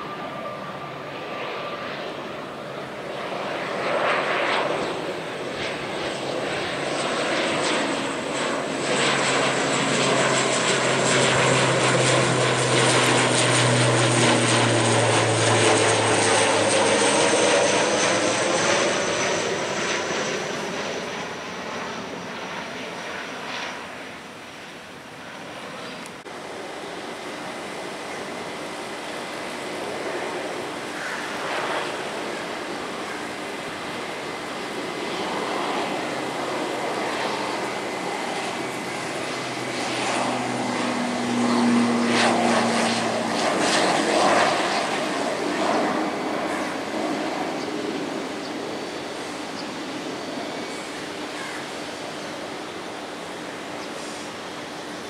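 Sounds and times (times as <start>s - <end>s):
turboprop aircraft droning: 0.0s - 55.0s.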